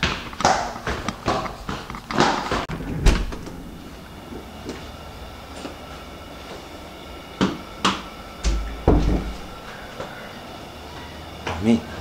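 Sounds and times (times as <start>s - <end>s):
steady low hum: 0.1s - 12.0s
heavy low door thuds: 2.7s - 3.8s, 8.4s - 9.6s.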